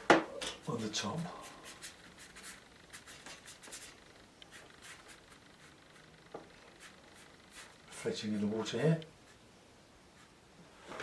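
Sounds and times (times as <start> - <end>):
brush stroking wet paper: 0.7 - 9.4.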